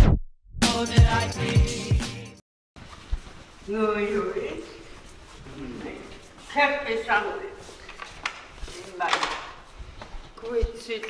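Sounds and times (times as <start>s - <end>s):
woman speaking loudly: 6.5s - 7.6s.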